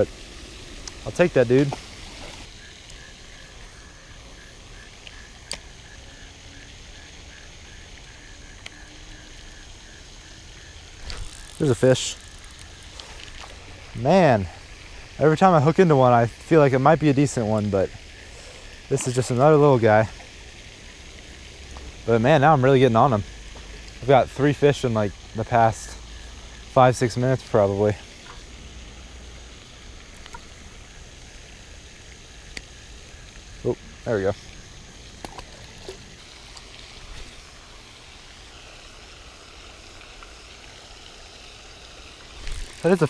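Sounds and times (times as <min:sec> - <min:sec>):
fountain spray splashing: 0:00.0 - 0:43.0.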